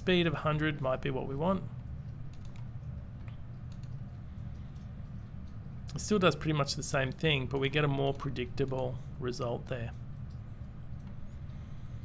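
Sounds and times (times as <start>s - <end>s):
steady low hum: 0.0s - 12.0s
faint mouse clicks: 2.0s - 6.0s.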